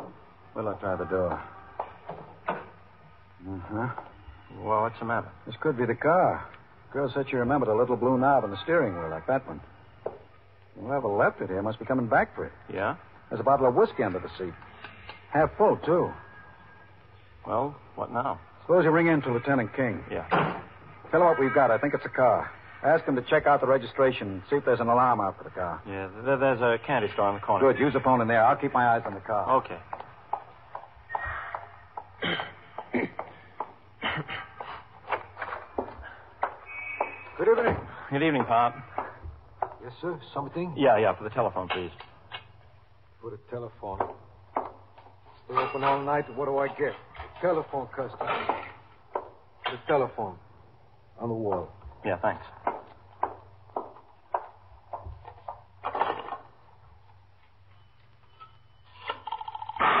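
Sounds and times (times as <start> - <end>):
footsteps walking: 1.3 - 2.8, 28.5 - 40.0, 43.9 - 45.8, 48.1 - 49.6, 51.5 - 58.3.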